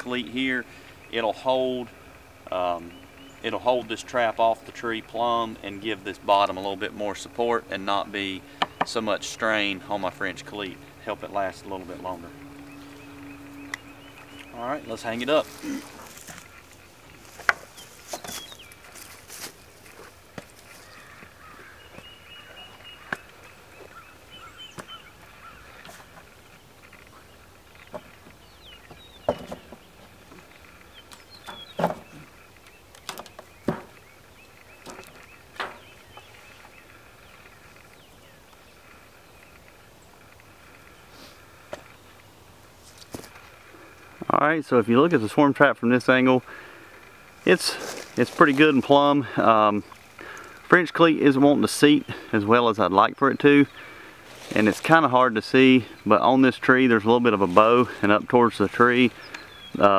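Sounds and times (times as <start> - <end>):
faint bird calls: 0.0 - 44.4, 58.9 - 59.9
wooden box knocks and clunks: 28.9 - 29.9, 31.5 - 32.3, 33.0 - 34.0.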